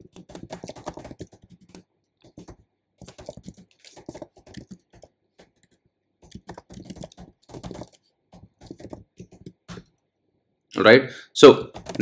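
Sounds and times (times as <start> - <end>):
typing on a keyboard: 0.0 - 9.9, 11.7 - 12.0.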